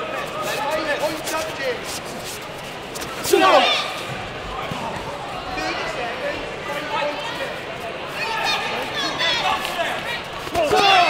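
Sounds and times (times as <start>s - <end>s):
scattered voices: 0.0s - 11.0s.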